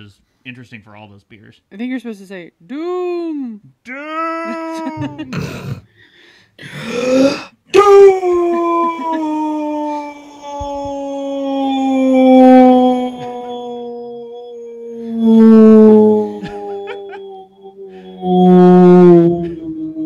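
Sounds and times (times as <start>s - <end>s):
person singing long howl: 4.1s - 5.4s, 7.1s - 20.0s.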